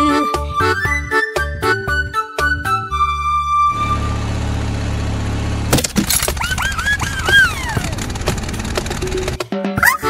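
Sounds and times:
cartoon engine idling: 3.7 - 9.4.

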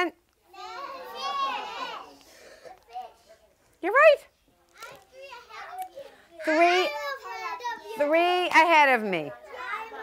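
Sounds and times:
children calling out together: 0.5 - 3.4, 4.8 - 8.1, 9.3 - 10.0.

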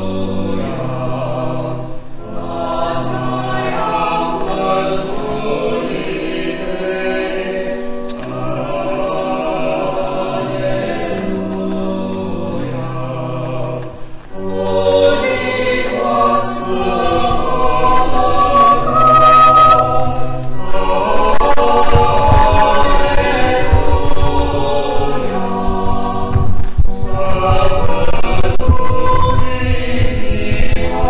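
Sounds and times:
choir singing in harmony: 0.0 - 31.0.

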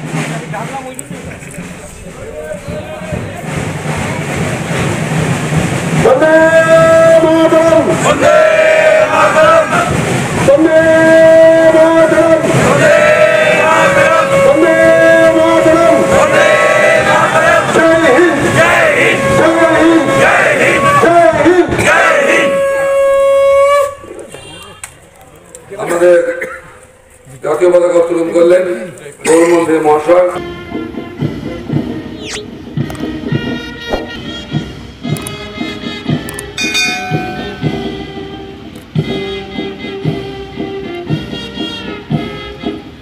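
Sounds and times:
outdoor background noise: 0.0 - 43.0
group of voices singing: 7.8 - 10.0, 12.4 - 19.2
long blown horn note: 13.6 - 17.0, 18.4 - 24.8, 36.6 - 39.8.

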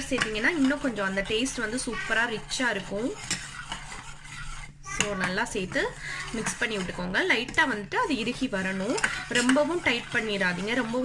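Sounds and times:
metal spoon scraping a saucepan: 0.0 - 11.0.

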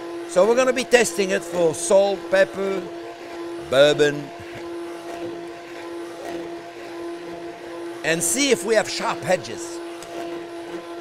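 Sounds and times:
immersion blender motor whine: 0.0 - 11.0.

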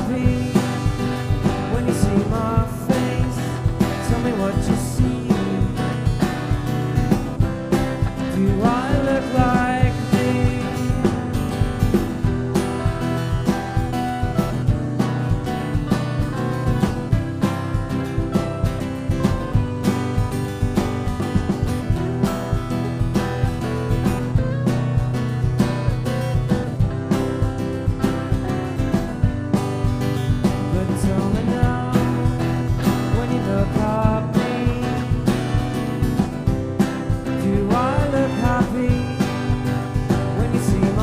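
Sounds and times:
acoustic guitar: 0.0 - 41.0
bass guitar: 0.0 - 41.0
drum beat: 0.0 - 41.0
electric guitar: 0.0 - 41.0
trumpet: 9.4 - 14.8, 37.7 - 41.0.

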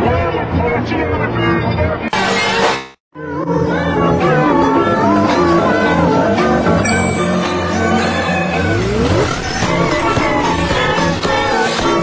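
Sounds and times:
background music: 3.5 - 12.0.

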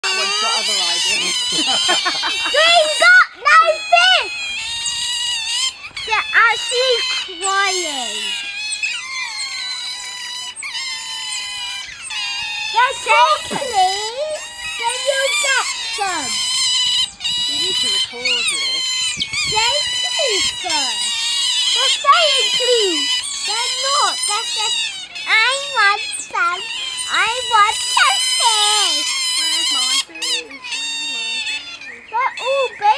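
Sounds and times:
otters squealing: 0.0 - 32.9.

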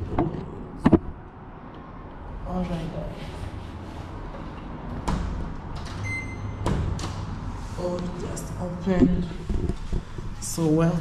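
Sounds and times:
high electronic beep: 6.0 - 6.6.

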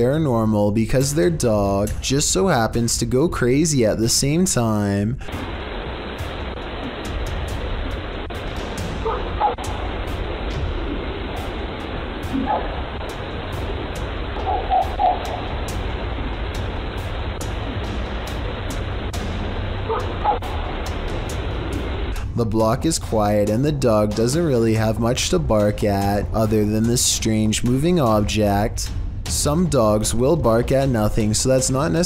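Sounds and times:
microphone hiss: 0.0 - 32.0.

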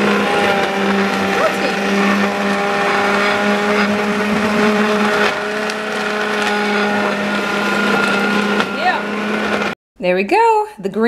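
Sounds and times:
blender motor humming: 0.0 - 9.8.

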